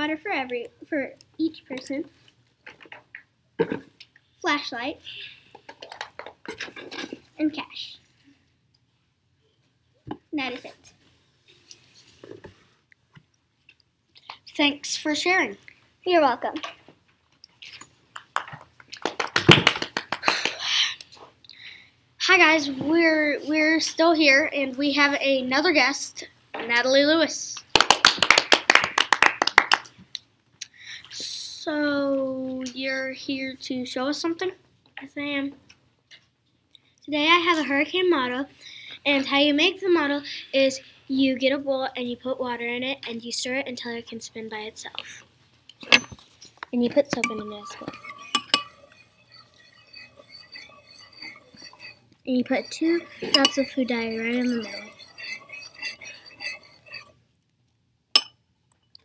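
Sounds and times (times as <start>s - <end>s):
hand clapping: 18.2s - 20.7s, 27.7s - 30.0s
metal spoon stirring in bowl: 44.9s - 57.2s, 58.2s - 59.0s.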